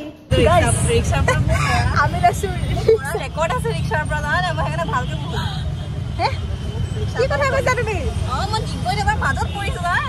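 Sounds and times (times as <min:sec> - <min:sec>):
women talking: 0:00.3 - 0:05.6, 0:07.1 - 0:10.0
vehicle engine rumble: 0:00.3 - 0:10.0
women laughing: 0:01.0 - 0:03.8.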